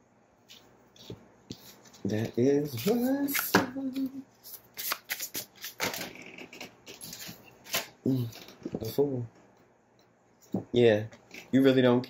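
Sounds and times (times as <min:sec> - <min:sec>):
cards being shuffled: 0:00.5 - 0:08.6.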